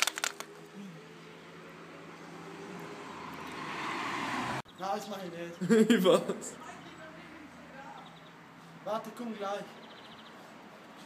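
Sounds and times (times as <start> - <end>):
road noise: 0.0 - 11.0
vehicle engine approaching: 0.4 - 4.7.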